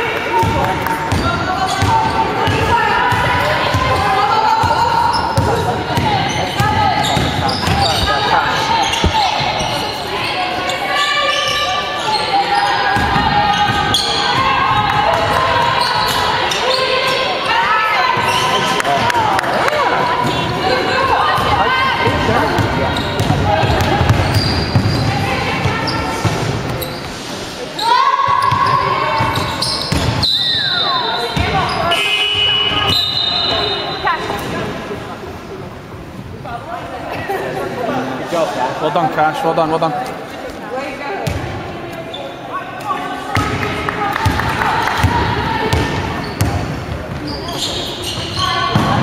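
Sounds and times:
players calling out: 0.0 - 27.1.

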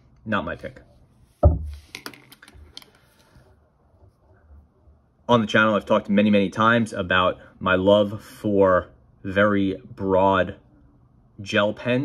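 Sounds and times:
dull thump: 1.4 - 1.8.

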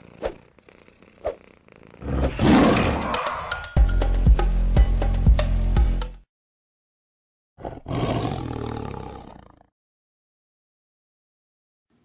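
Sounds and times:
music with steady beat: 3.7 - 6.2
big cat roar: 7.6 - 9.7.

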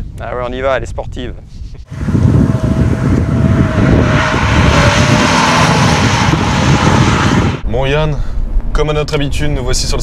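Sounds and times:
car engine running loudly: 1.9 - 7.6.

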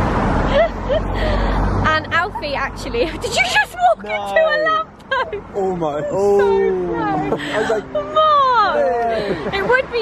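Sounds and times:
road traffic passing: 0.0 - 10.0.

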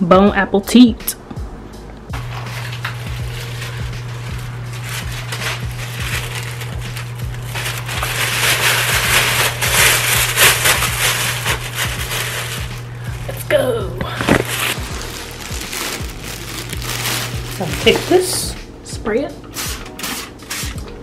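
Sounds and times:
background music: 0.0 - 21.0
plastic bag crinkling: 2.2 - 18.6.

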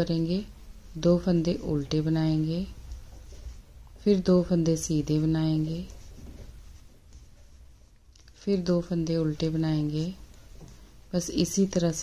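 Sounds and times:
low steady hum: 0.0 - 12.0
knitting needles scratching: 0.1 - 12.0.

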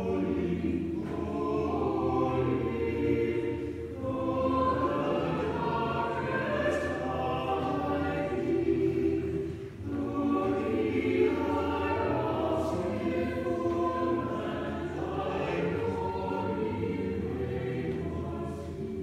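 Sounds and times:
church choir singing: 0.0 - 19.0.

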